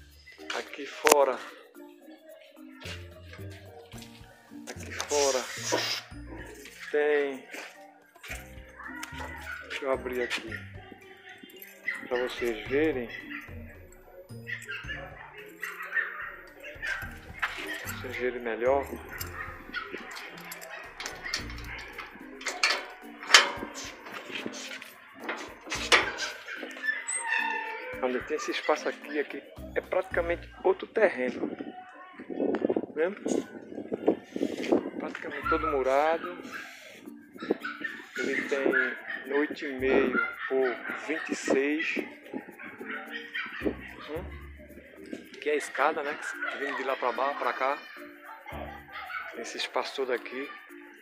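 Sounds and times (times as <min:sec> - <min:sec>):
dog yipping: 0:08.8 - 0:10.8, 0:11.5 - 0:13.6, 0:14.3 - 0:18.1, 0:18.9 - 0:29.0, 0:35.3 - 0:44.4, 0:46.2 - 0:49.5
animal calls: 0:18.9 - 0:29.0.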